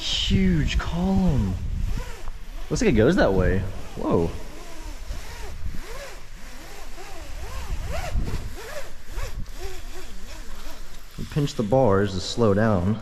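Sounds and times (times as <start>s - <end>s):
rope rasping through rappel rack: 0.0s - 12.1s
rope squeaks: 1.8s - 2.8s, 3.8s - 11.2s.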